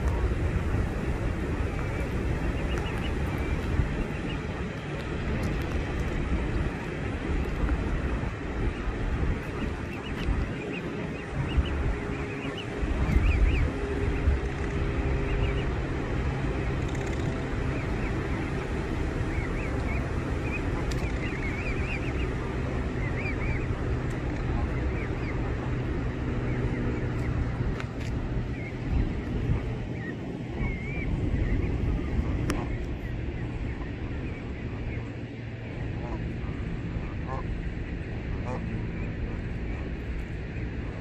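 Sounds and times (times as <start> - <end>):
goslings peeping: 0.0 - 41.0
wind rumbling on microphone: 0.0 - 41.0.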